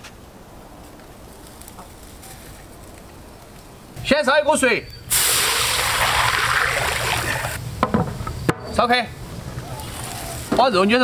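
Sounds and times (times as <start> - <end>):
water pouring into metal wok: 5.1 - 7.6.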